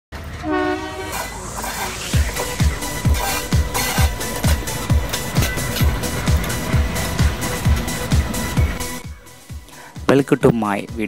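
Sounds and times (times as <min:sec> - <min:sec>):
train approaching: 0:00.1 - 0:10.1
locomotive horn blast: 0:00.2 - 0:09.0.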